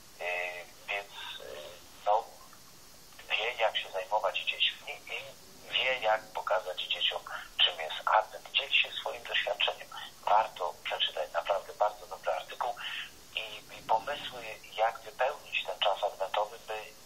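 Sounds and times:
person talking over telephone: 0.2s - 2.4s, 3.2s - 17.0s.

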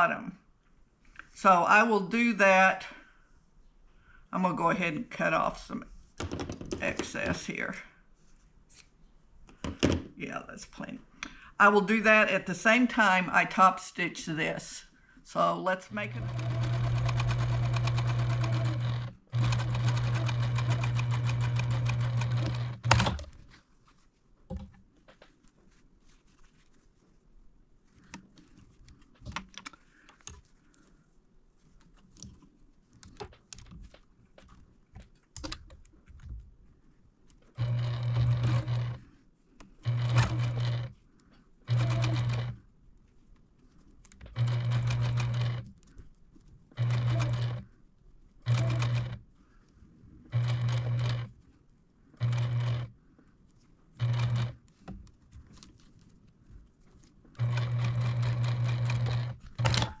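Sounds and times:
electric sewing machine stitching: 16.0s - 23.3s, 37.6s - 39.0s, 39.8s - 40.9s, 41.7s - 42.6s, 44.3s - 45.7s, 46.8s - 47.6s, 48.5s - 49.2s, 50.3s - 51.3s, 52.2s - 52.9s, 54.0s - 54.6s, 57.4s - 60.0s.

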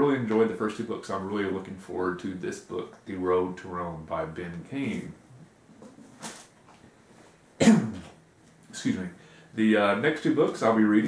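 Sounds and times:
man coughing loudly: 7.6s - 8.1s.

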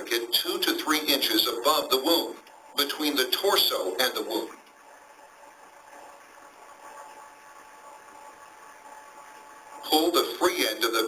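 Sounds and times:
faint steady tones: 0.0s - 11.0s
line noise hiss: 0.0s - 11.0s.

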